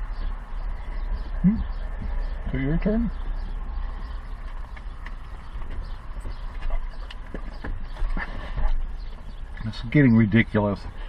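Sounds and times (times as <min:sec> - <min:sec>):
vehicle cab rumble: 0:00.0 - 0:11.0.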